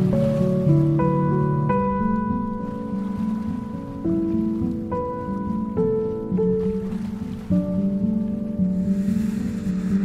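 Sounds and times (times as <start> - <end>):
soft background music: 0.0 - 10.0
steady rushing noise: 8.8 - 10.0.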